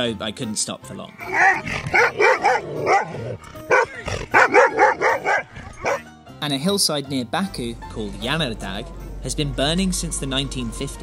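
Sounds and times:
dog barking: 1.3 - 6.0.

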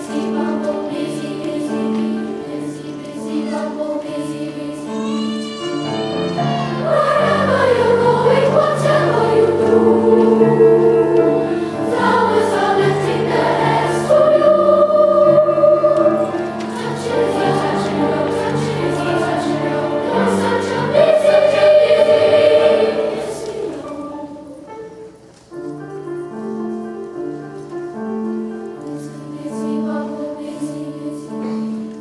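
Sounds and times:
children's choir singing: 0.0 - 25.2, 26.2 - 32.0
piano accompaniment: 0.0 - 32.0.

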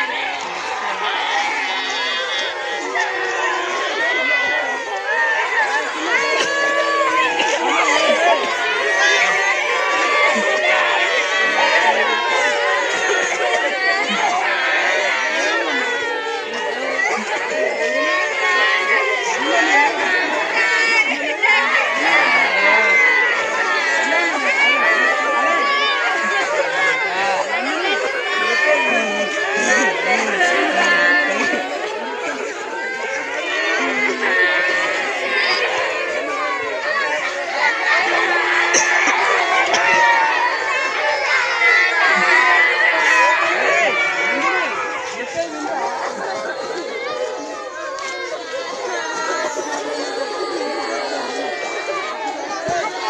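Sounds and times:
children shouting and crying: 0.0 - 53.0
children wailing: 0.0 - 53.0.

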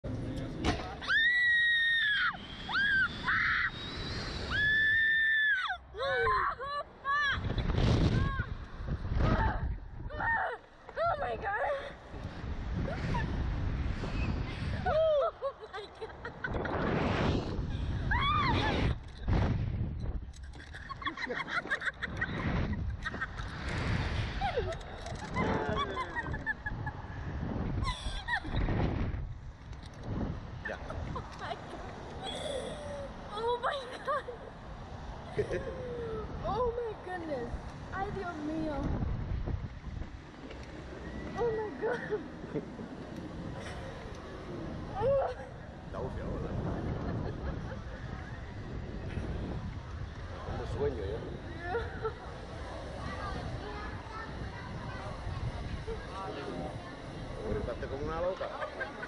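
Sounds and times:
low rumbling wind noise: 0.0 - 59.0
riders screaming: 1.0 - 7.4
person shrieking laughter: 14.8 - 16.3.

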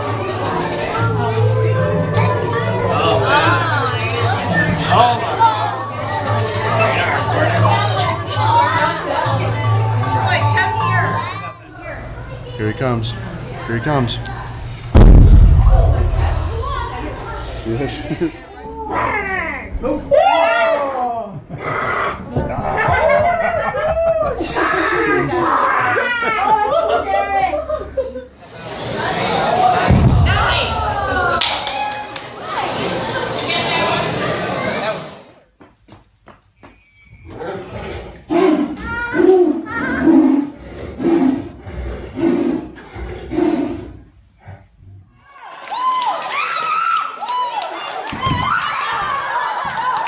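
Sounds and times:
people laughing: 17.7 - 18.7, 22.5 - 28.4, 47.8 - 50.0
tigers roaring and snarling: 21.5 - 22.3, 37.4 - 45.0
human voices: 24.0 - 28.2, 37.3 - 45.2.

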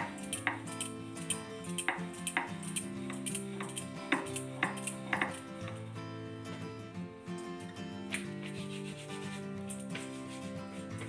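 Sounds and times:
background music: 0.0 - 11.0
rolling pin rolling dough: 1.8 - 5.4, 8.4 - 11.0.

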